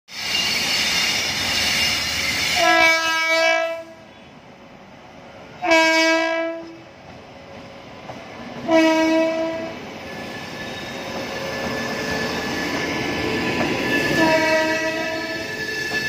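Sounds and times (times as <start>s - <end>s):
locomotive air horn blasts: 2.5s - 4.0s, 5.6s - 6.8s, 8.6s - 9.8s, 14.1s - 15.5s.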